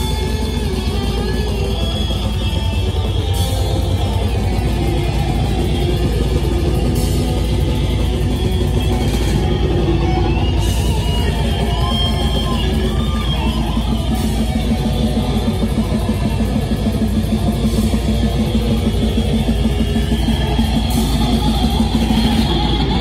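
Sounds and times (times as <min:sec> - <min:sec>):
death metal band playing: 0:00.0 - 0:23.0.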